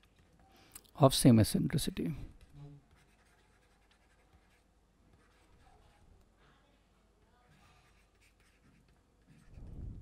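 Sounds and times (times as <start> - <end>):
stylus scratching on tablet: 0.0 - 0.5, 1.6 - 10.0.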